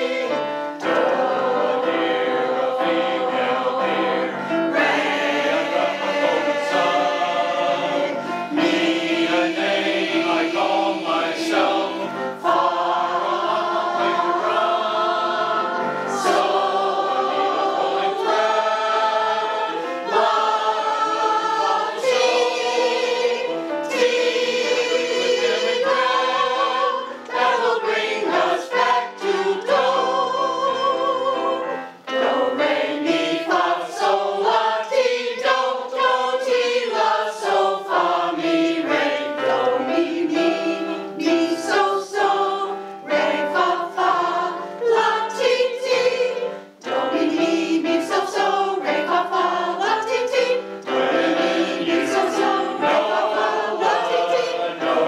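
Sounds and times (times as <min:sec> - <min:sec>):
digital piano: 0:00.0 - 0:55.0
mixed choir singing in harmony: 0:00.0 - 0:55.0.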